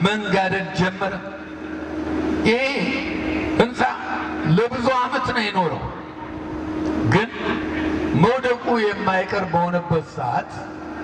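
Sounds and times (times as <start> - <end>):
rushing background noise: 0.0 - 11.0.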